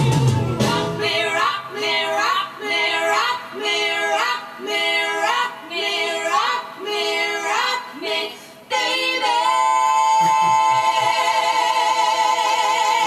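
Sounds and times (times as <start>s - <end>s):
blues band: 0.0s - 1.3s
female vocalists singing in harmony: 0.6s - 13.0s.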